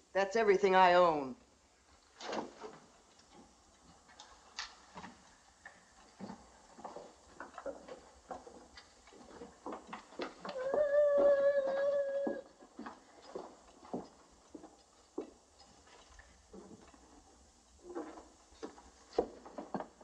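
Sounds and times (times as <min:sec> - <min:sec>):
footsteps on wooden floor: 0:06.2 - 0:15.4.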